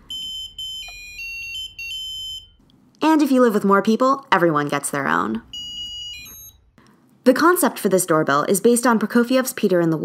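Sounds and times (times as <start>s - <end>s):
piezo buzzer beep melody: 0.0s - 2.6s, 5.5s - 6.7s.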